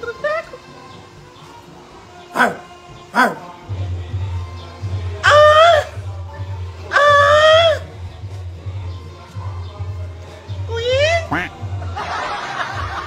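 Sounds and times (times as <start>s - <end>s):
music with steady beat: 1.0s - 13.0s.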